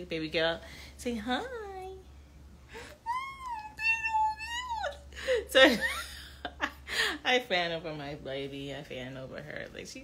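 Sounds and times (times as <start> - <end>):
woman cooing high-pitched: 2.8 - 5.1.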